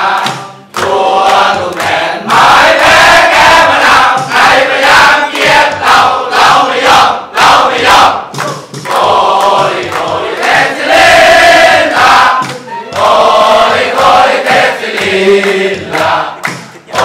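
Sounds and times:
crowd of men singing: 0.0s - 17.0s.

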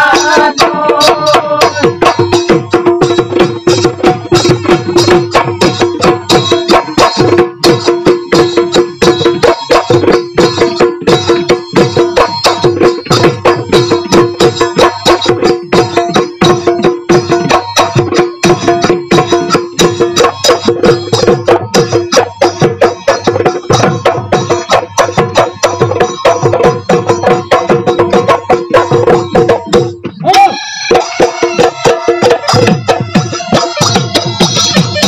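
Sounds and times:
fast drumming: 0.0s - 35.0s.

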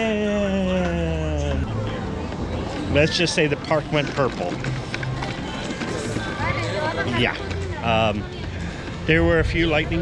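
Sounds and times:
people's voices: 0.0s - 10.0s
footsteps: 2.1s - 9.9s.

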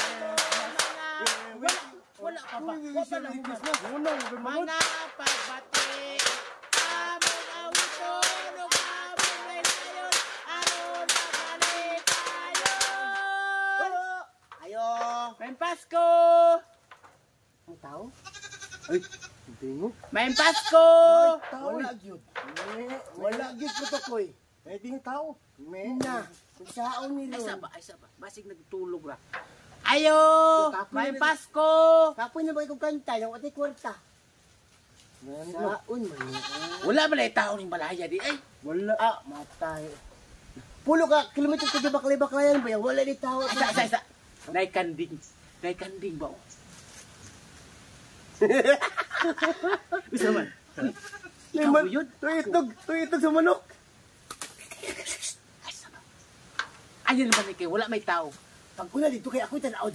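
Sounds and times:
goat bleating: 18.1s - 19.4s, 20.1s - 21.8s, 23.2s - 24.3s, 26.6s - 27.6s, 35.6s - 37.2s, 41.1s - 42.2s, 43.2s - 44.0s, 50.2s - 51.8s, 52.5s - 53.1s.

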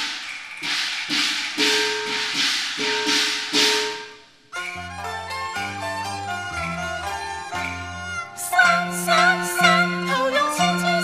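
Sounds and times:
cymbals crashing: 0.0s - 4.9s.

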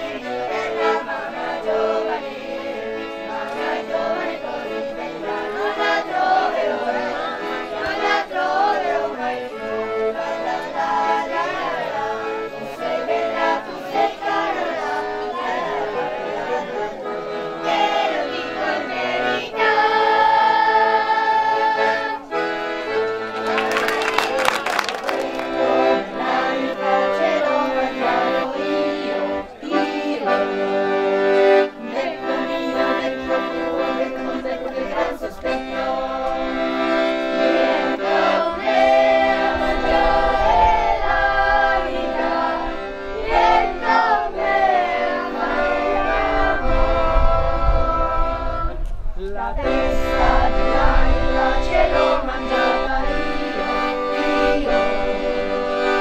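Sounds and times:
children singing: 0.0s - 22.5s, 25.2s - 48.7s, 49.6s - 56.0s
piano-accordion: 0.0s - 56.0s
hand claps: 23.0s - 25.7s.

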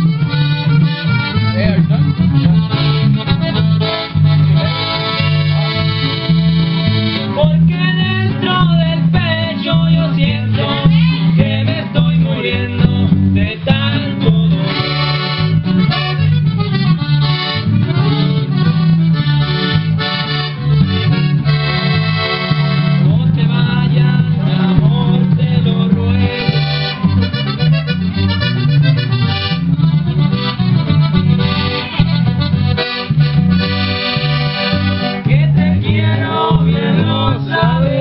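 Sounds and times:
accordion fast melodic runs: 0.0s - 38.0s
electric guitar: 0.0s - 38.0s
pulsing electric bass line: 0.0s - 38.0s.

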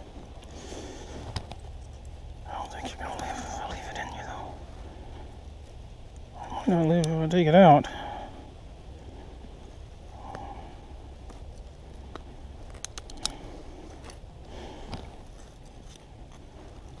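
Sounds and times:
soft rustles: 0.0s - 17.0s
sharp clicks: 12.1s - 13.4s.

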